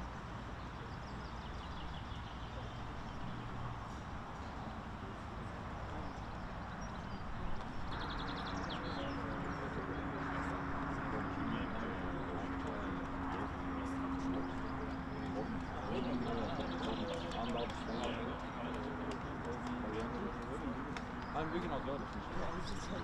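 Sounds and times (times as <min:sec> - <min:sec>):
distant indistinct voices: 0:00.0 - 0:23.0
steady low hum: 0:00.0 - 0:23.0.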